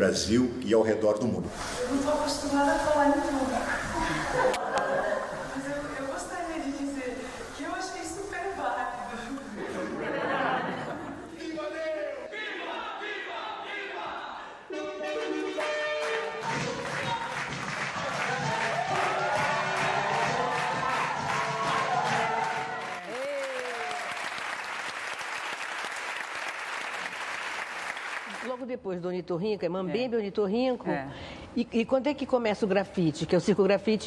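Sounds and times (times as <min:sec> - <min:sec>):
music: 0:14.7 - 0:22.9
audience applauding and cheering: 0:14.9 - 0:28.6.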